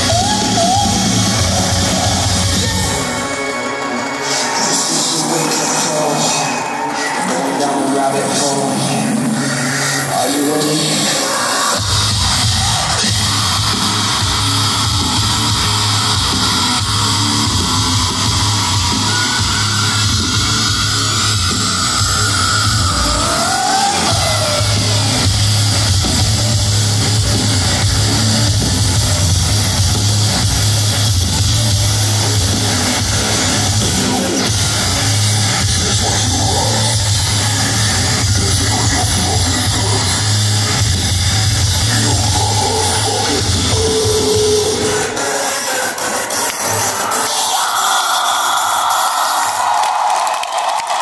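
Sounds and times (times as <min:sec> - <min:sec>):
heavy bass and drums: 0:00.0 - 0:03.2, 0:10.8 - 0:45.3
metal band playing live: 0:00.0 - 0:49.7.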